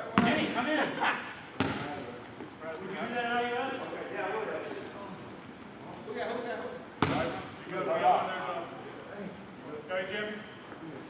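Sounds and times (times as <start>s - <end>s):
basketball bouncing on wooden floor: 7.0s - 7.3s.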